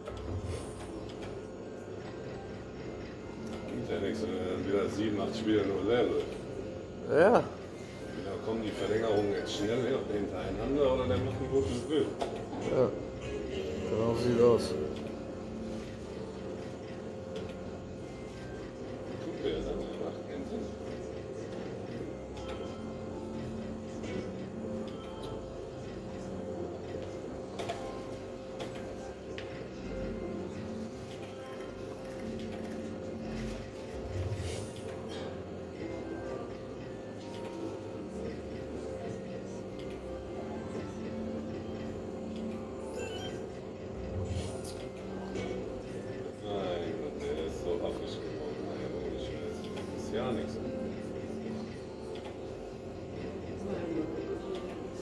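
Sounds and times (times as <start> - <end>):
muffled voices: 0.0 - 55.0
slot machine electronic jingles: 42.9 - 43.5.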